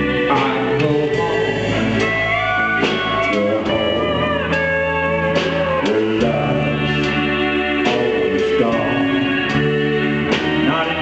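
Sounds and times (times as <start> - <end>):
drums: 0.0 - 11.0
electric bass: 0.0 - 11.0
pedal steel guitar: 0.0 - 11.0.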